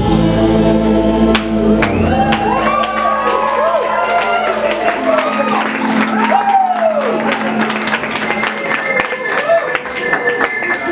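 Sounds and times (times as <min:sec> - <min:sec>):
live band holding low note: 0:00.0 - 0:03.7
crowd cheering and clapping: 0:01.3 - 0:10.9
gliding pitched sound: 0:01.4 - 0:03.8.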